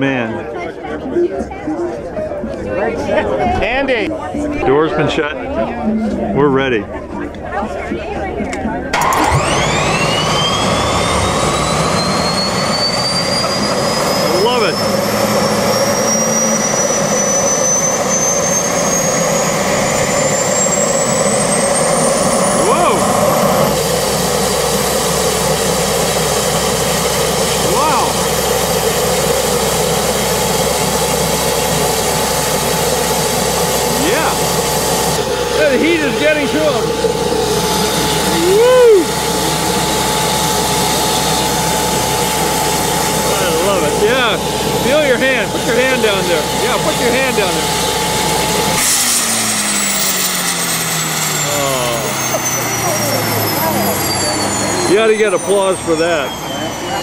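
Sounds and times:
gas turbine whine: 0:00.0 - 0:57.0.

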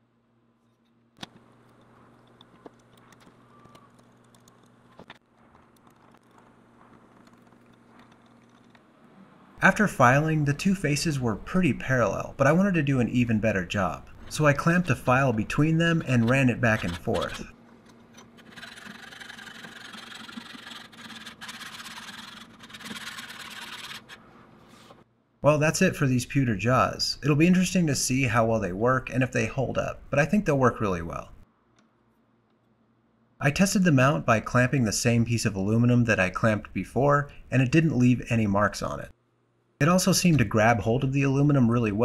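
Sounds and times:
low steady hum: 0:00.0 - 0:21.8
metal file rasping on metal: 0:18.3 - 0:24.2.

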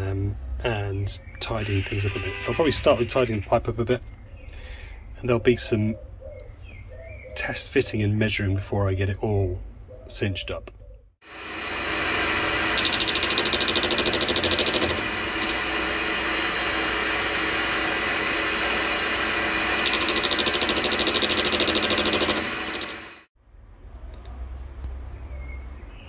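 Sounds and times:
lathe tool cutting steel: 0:11.3 - 0:23.3
metal lathe running: 0:11.3 - 0:23.3.

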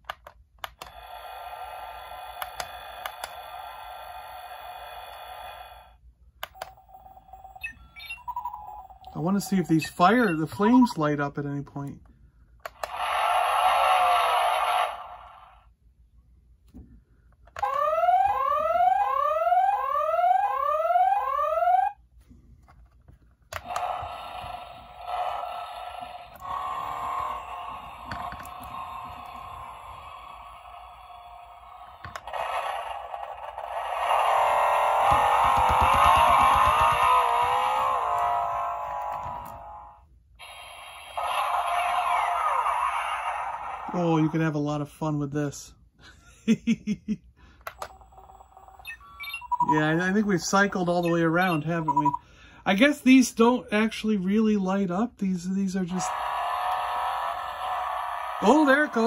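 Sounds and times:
toy engine effects: 0:00.6 - 0:11.1, 0:12.7 - 0:15.8, 0:17.5 - 0:22.0, 0:23.5 - 0:44.5, 0:47.6 - 0:53.3, 0:55.7 - 0:59.0
toy electronic sound effects: 0:00.7 - 0:11.1, 0:12.7 - 0:15.6, 0:17.6 - 0:22.0, 0:23.6 - 0:44.5, 0:47.8 - 0:52.2, 0:55.9 - 0:59.0.

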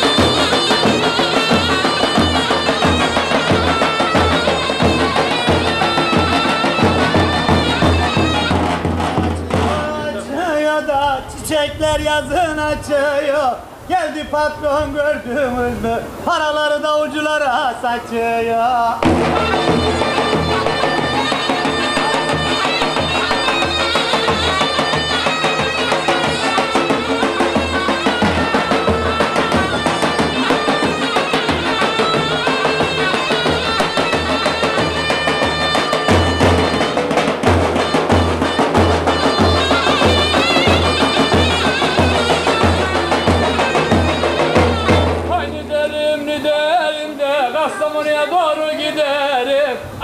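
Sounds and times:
shrill reed melody: 0:00.0 - 0:11.4, 0:19.0 - 0:50.0.

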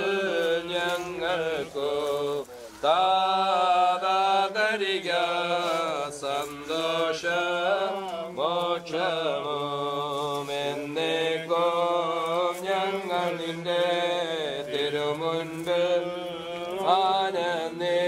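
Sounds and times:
voices chanting a slow hymn: 0:00.0 - 0:18.0.

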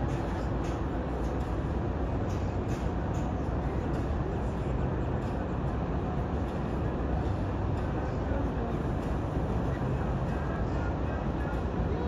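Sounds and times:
low harbour rumble: 0:00.0 - 0:12.0.

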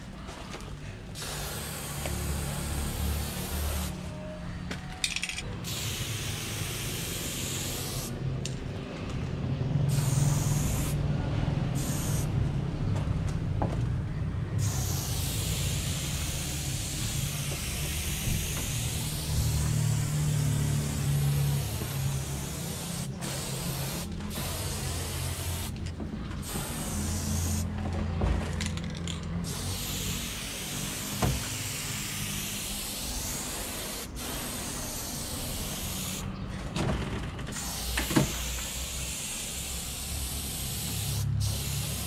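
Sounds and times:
aerosol spray can hissing: 0:01.2 - 0:04.0, 0:05.6 - 0:08.2, 0:09.9 - 0:11.0, 0:11.8 - 0:12.3, 0:14.6 - 0:25.8, 0:26.4 - 0:27.7, 0:29.4 - 0:36.3, 0:37.6 - 0:42.0.

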